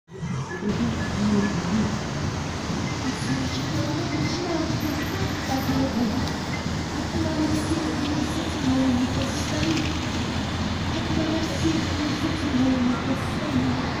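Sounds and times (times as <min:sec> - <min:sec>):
passing cars humming: 0:00.1 - 0:14.0
traffic on a wet road: 0:00.1 - 0:14.0.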